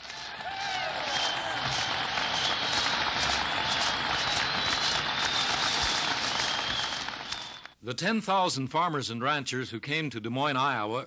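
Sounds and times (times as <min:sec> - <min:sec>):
crowd applauding: 0:00.0 - 0:07.8.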